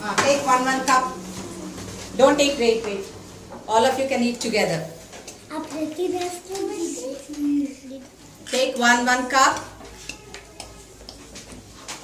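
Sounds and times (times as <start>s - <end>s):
cups and plastic spoons clicking: 8.4s - 12.0s.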